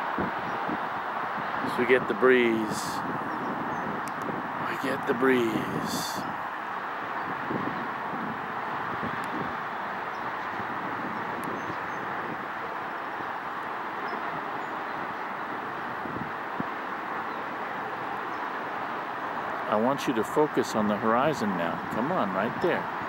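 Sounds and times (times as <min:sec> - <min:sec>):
breeze gusts on microphone: 0:00.0 - 0:23.0
distant freeway traffic: 0:00.0 - 0:23.0.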